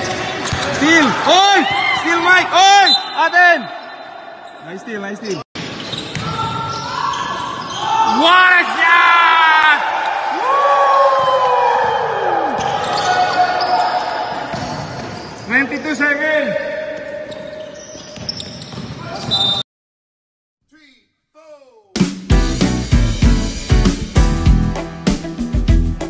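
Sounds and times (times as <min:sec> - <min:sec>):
sneakers squeaking: 0:00.0 - 0:08.2, 0:11.9 - 0:15.8, 0:16.9 - 0:19.6
basketball bouncing: 0:05.6 - 0:06.6.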